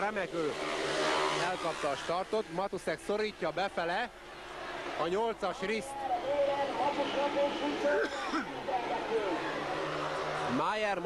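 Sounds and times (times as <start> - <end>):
motorcycle engines racing: 0.0 - 11.0.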